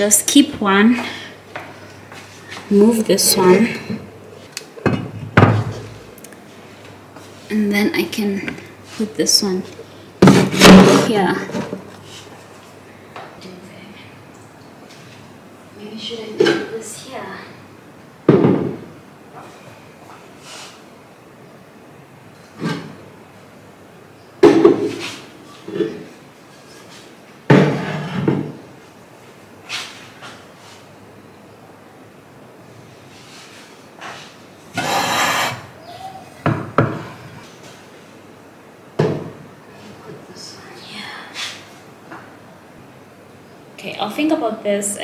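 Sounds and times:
objects knocking on wooden shelf: 0:04.8 - 0:06.0, 0:18.3 - 0:18.9, 0:24.4 - 0:25.0, 0:39.0 - 0:39.4
knocks on wooden shelf: 0:18.3 - 0:18.8.

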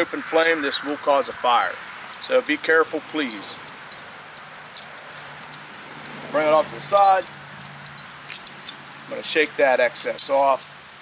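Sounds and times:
metal trap chain clinking: 0:00.0 - 0:10.8.

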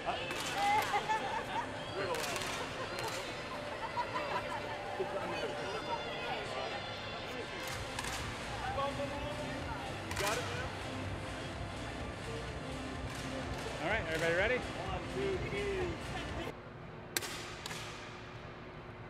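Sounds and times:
chatter in echoing hall: 0:00.0 - 0:16.7.

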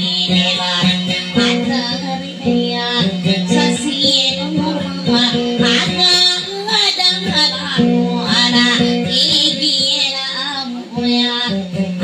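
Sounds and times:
strummed guitar: 0:00.0 - 0:12.0
woman singing: 0:00.0 - 0:12.0.

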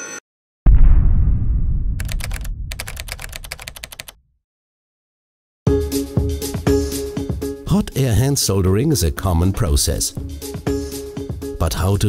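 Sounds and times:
deep boom: 0:00.7 - 0:03.0
fast sharp ticks: 0:02.0 - 0:04.1.

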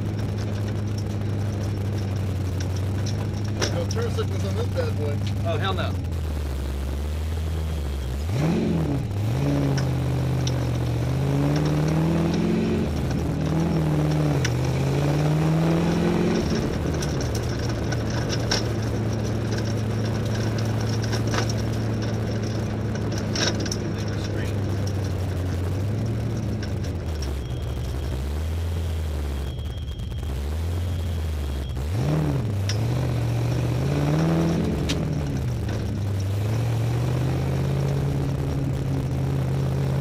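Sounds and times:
race car engine accelerating: 0:00.0 - 0:40.0.

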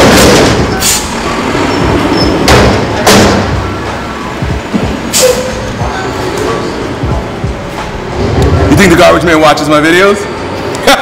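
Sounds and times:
loud bursts and thuds: 0:00.0 - 0:01.2, 0:01.8 - 0:05.1
garbage truck engine rumble: 0:00.0 - 0:09.0.

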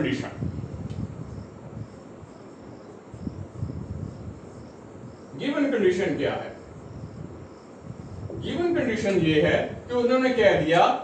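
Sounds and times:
faint high insect chirping: 0:00.0 - 0:11.0.

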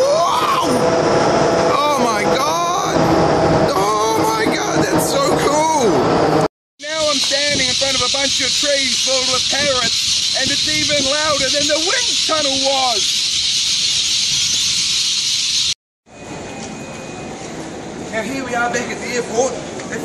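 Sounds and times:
loud steady high hiss: 0:06.8 - 0:15.8.

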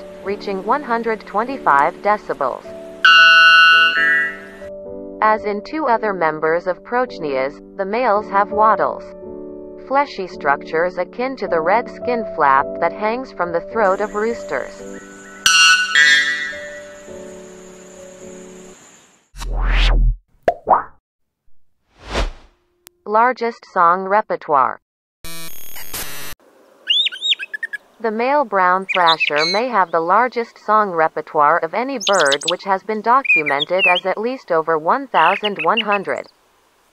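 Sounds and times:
background music: 0:00.0 - 0:18.8
bellbird two-note call: 0:03.0 - 0:04.6, 0:15.1 - 0:17.0.

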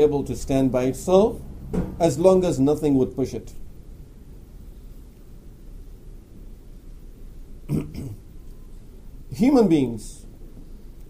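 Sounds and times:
man clearing throat: 0:07.7 - 0:08.3.

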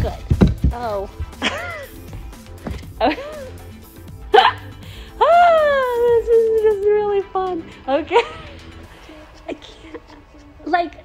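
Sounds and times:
woman speaking: 0:00.0 - 0:01.1, 0:05.2 - 0:08.3
background music: 0:00.0 - 0:11.0.

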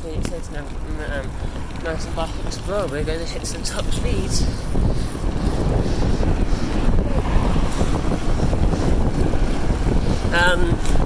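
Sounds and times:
bike tyres rumbling on asphalt: 0:00.0 - 0:11.0
wind buffeting microphone: 0:00.0 - 0:11.0.

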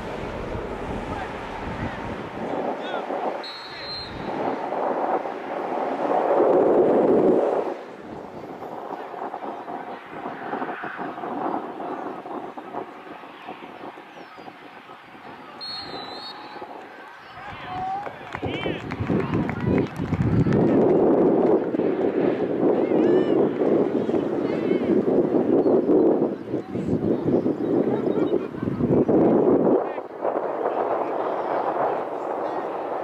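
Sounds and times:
distant voices: 0:00.0 - 0:33.0
wind on microphone: 0:00.0 - 0:33.0.

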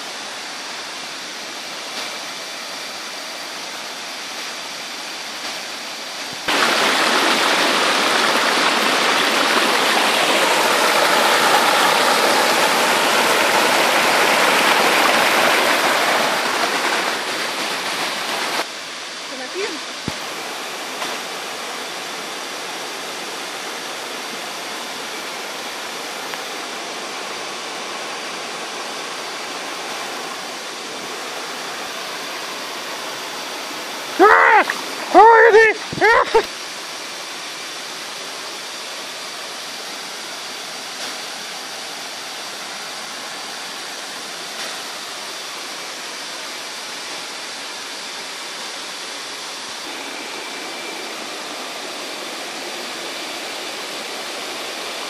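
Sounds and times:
waterfall rushing and splashing: 0:00.0 - 0:55.0.

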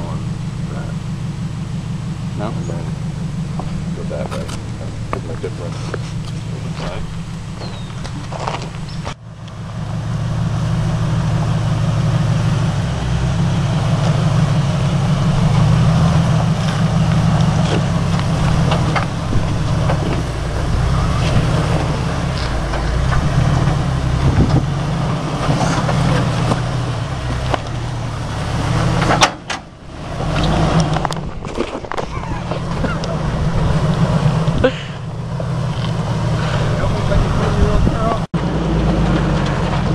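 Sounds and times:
engine running at low revs: 0:00.0 - 0:39.9.

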